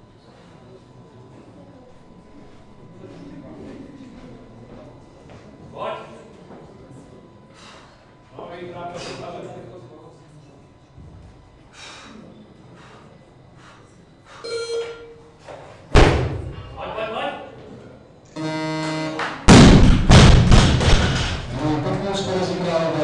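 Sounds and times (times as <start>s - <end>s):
steady buzzer: 14.4s - 15.4s, 18.3s - 19.6s.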